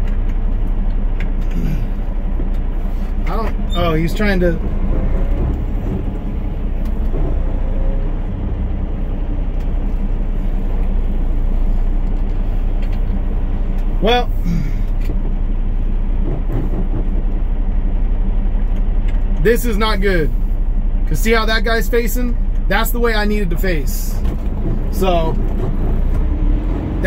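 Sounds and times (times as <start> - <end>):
diesel truck engine idling: 0.0 - 27.0.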